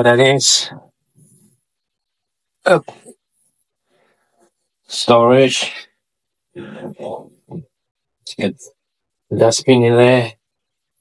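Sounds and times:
person speaking: 4.8 - 10.4.

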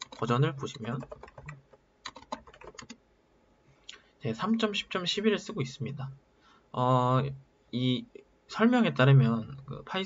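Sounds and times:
computer keyboard key clicks: 0.0 - 3.0.

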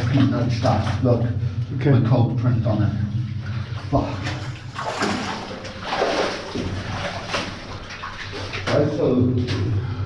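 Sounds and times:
boots wading through shallow water: 3.4 - 10.0.

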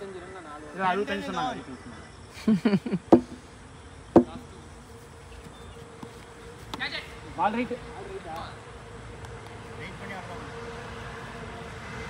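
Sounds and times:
bat striking ball: 3.1 - 3.4, 4.2 - 4.5.

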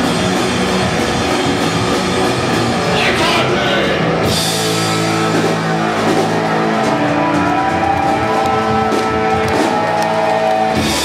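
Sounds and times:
loud distorted rock band: 0.0 - 11.0.

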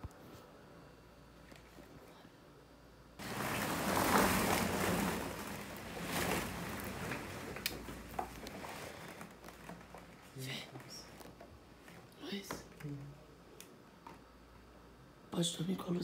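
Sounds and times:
plastic balls rustling and clattering: 3.2 - 12.1.

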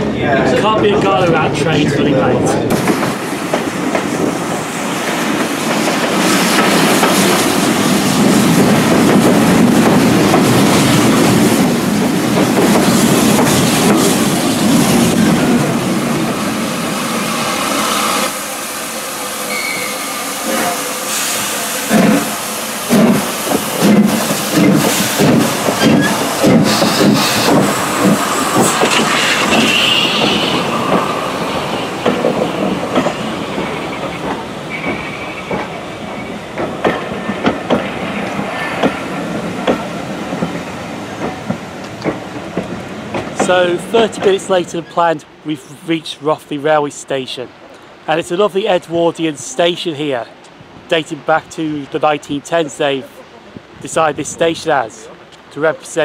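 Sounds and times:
steam locomotive passing: 0.0 - 56.0
train rushing at speed: 0.0 - 56.0.

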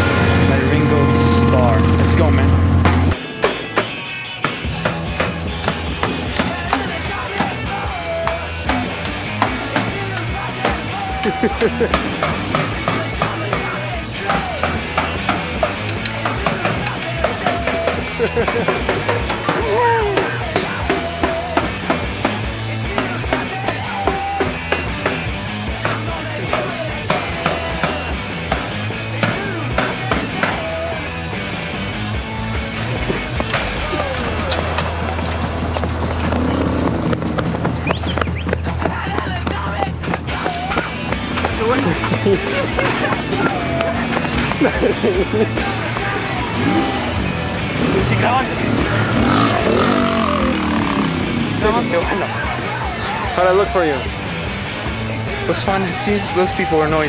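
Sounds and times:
background voices: 0.0 - 3.2
loud bass-heavy music: 0.0 - 57.0.

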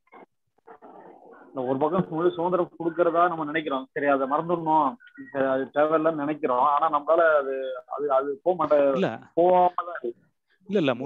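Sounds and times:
person talking over video call: 0.7 - 11.0.

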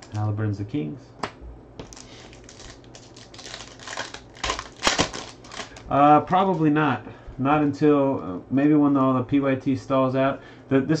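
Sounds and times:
foil card pack tearing: 1.8 - 6.6.

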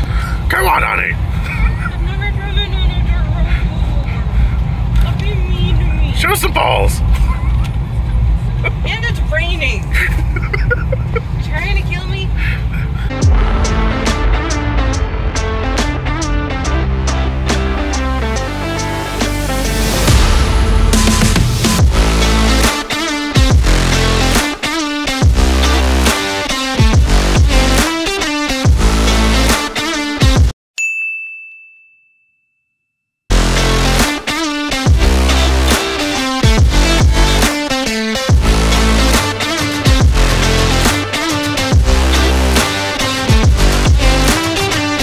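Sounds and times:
car road and engine rumble: 0.0 - 26.1
background music with beat: 13.2 - 30.5, 33.3 - 45.0
bright ding: 30.8 - 32.8.

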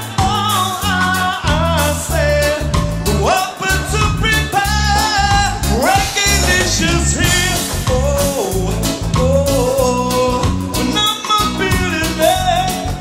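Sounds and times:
live reggae band playing: 0.0 - 13.0.

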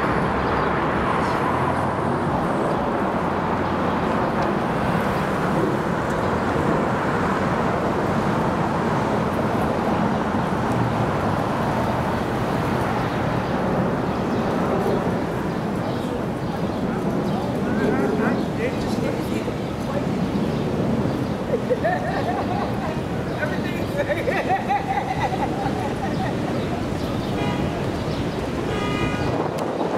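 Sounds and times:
cars passing on street: 0.0 - 29.9.

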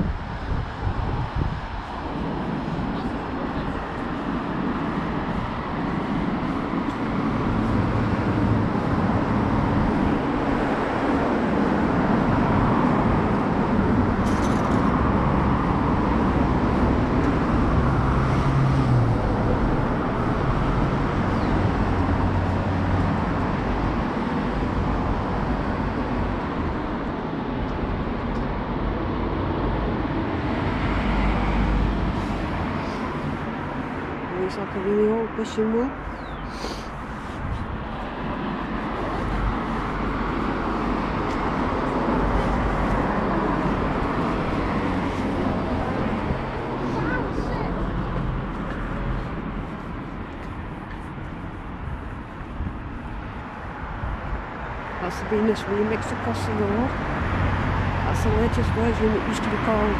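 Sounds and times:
passing road traffic: 0.0 - 59.9.

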